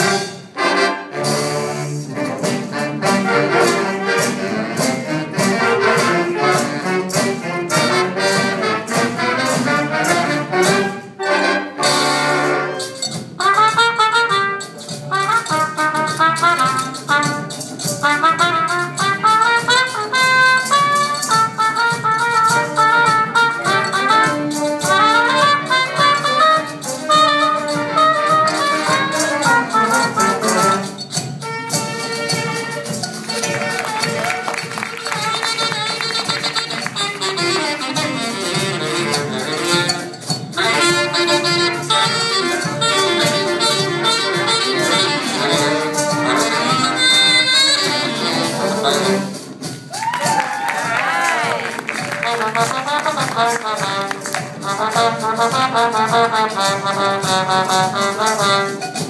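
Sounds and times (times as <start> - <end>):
big band playing latin jazz: 0.0 - 59.0
percussion strokes: 0.0 - 59.0
trumpet solo: 0.0 - 59.0.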